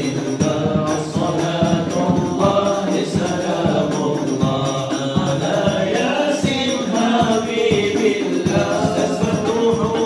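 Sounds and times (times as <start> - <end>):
hand drum thumps: 0.0 - 10.0
man chanting: 0.0 - 10.0.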